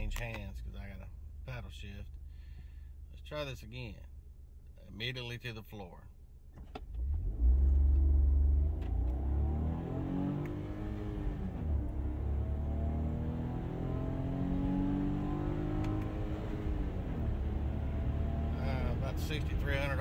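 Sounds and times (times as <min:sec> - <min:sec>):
car engine accelerating: 0:06.8 - 0:20.0.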